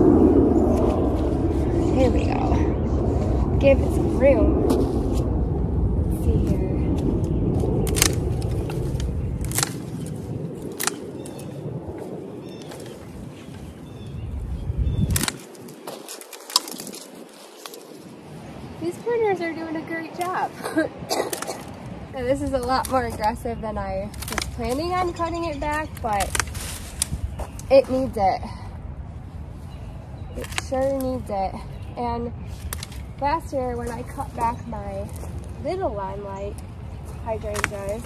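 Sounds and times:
low rumble: 0.0s - 38.0s
loppers snapping woody stems: 7.8s - 11.5s, 15.0s - 17.9s, 21.2s - 23.4s, 24.0s - 27.8s, 30.4s - 31.3s, 32.6s - 34.5s, 37.4s - 38.0s.

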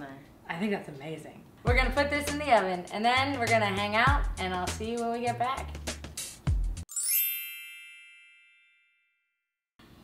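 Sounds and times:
bell-like chime ding: 6.9s - 9.5s.

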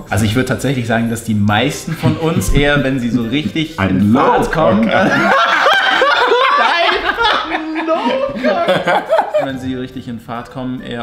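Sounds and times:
men laughing loudly: 4.2s - 9.6s.

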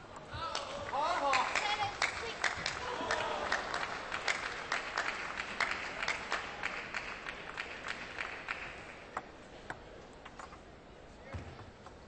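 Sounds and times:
audience applause: 0.8s - 9.0s.

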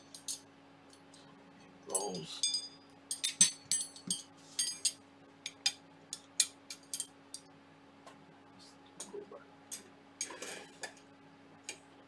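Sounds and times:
steel rods clinking and ringing: 2.0s - 5.0s.

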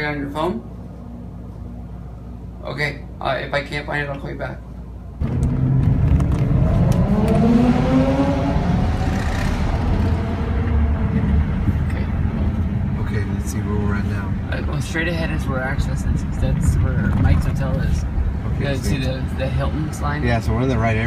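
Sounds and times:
car engine accelerating: 5.2s - 14.4s
road noise inside car: 5.2s - 21.0s.

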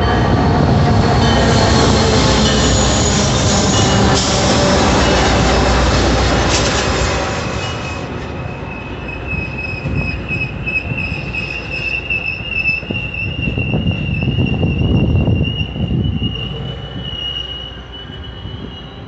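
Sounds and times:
train wheels rumbling and clattering: 0.0s - 19.0s
high-pitched wheel squeal: 1.7s - 19.0s.

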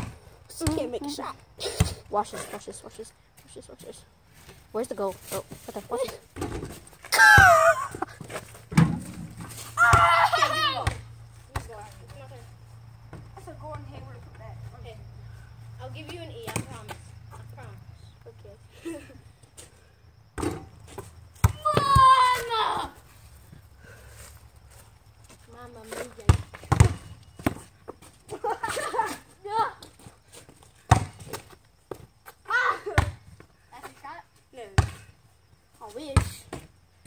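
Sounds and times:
basketball bouncing: 0.0s - 1.0s, 26.2s - 27.6s, 30.9s - 31.4s
high shout: 7.1s - 8.0s, 9.8s - 10.9s, 21.6s - 23.0s.

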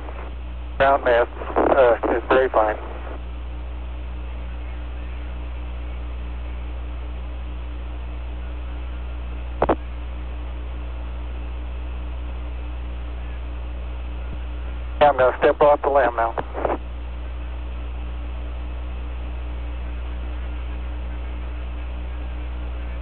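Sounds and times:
short sharp radio crackle: 0.0s - 3.2s, 9.6s - 10.0s, 15.0s - 16.9s
radio hum and hiss: 0.0s - 23.0s.

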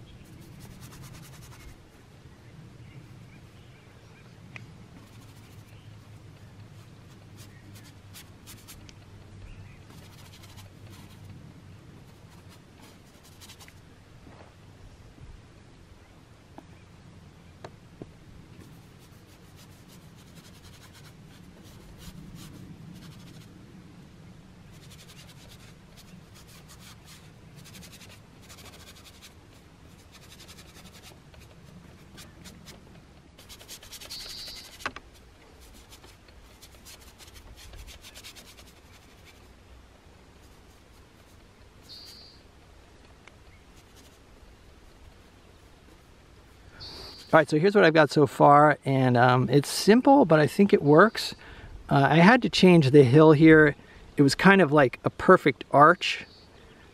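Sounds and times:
low steady rumble: 0.0s - 55.8s
palette knife scratching on panel: 9.9s - 11.2s, 18.7s - 23.5s, 24.7s - 32.8s, 33.4s - 35.0s, 35.6s - 39.5s.

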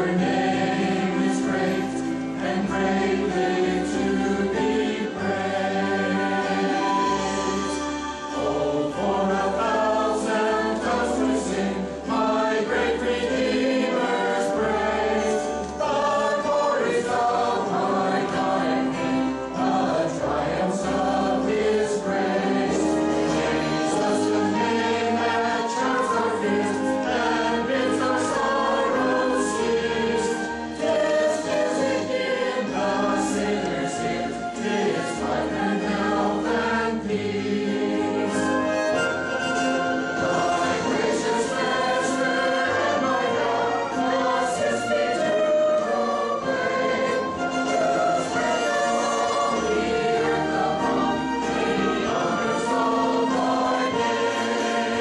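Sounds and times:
choir singing: 0.0s - 55.0s.

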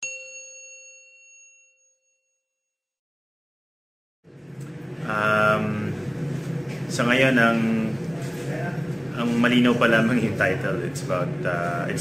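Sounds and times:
bell-like chime: 0.0s - 2.7s.

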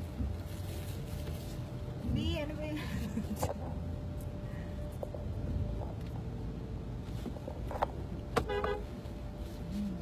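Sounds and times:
car horn toot: 8.4s - 9.0s.

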